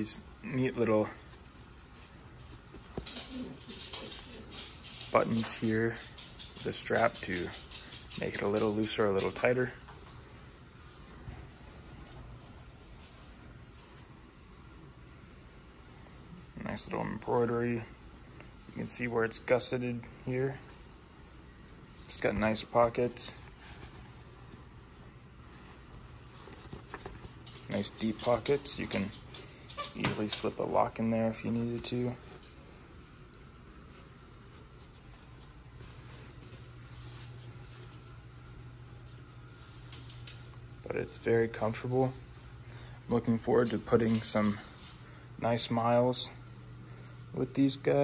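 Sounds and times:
fabric rustling: 0:00.0 - 0:15.1, 0:20.5 - 0:45.8
steady low hum: 0:00.0 - 0:48.0.

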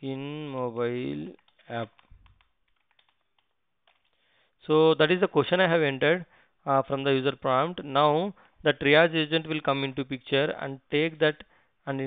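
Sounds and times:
computer keyboard keystrokes: 0:01.3 - 0:04.2.

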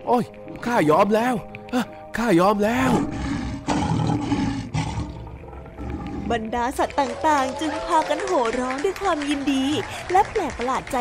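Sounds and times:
lion roar: 0:02.8 - 0:06.5.

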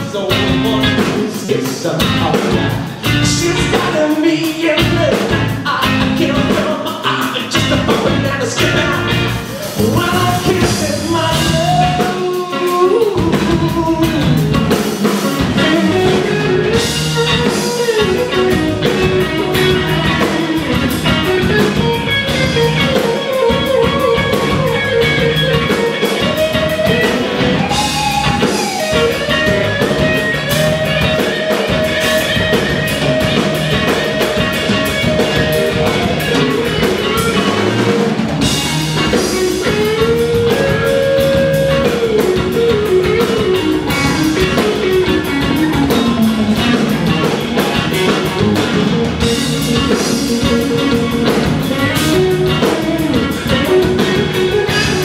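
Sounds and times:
drum kit: 0:00.0 - 0:55.0
electric guitar lead with bends: 0:00.0 - 0:55.0.

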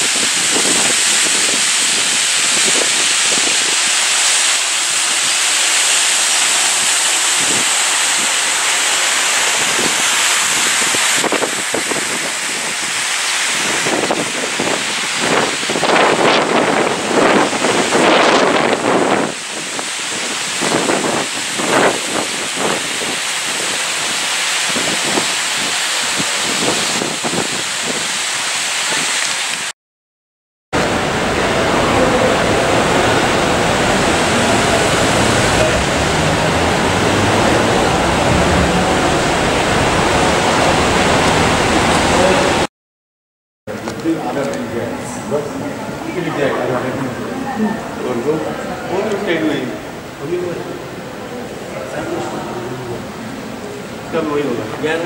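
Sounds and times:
loud rushing hiss: 0:00.0 - 0:29.7, 0:30.8 - 0:42.7.

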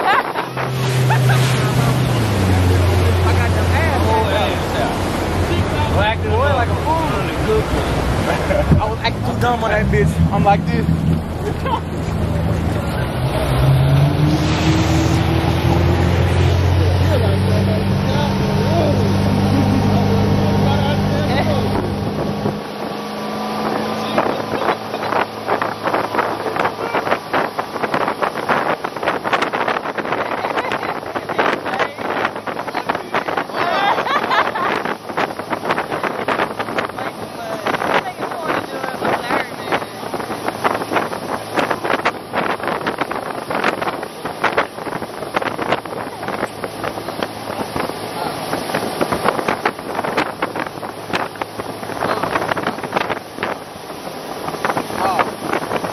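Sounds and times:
motorboat engine humming: 0:00.0 - 0:55.9
water rushing: 0:00.0 - 0:55.9
wind buffeting microphone: 0:00.0 - 0:55.9.

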